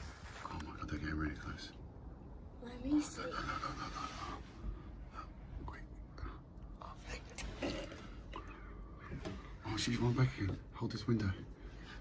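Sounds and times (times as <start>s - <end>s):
low background rumble: 0.0s - 12.0s
hushed whispering: 3.0s - 9.0s.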